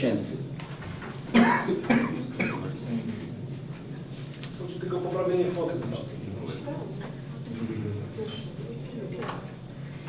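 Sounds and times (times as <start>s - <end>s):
person coughing: 1.3s - 2.7s.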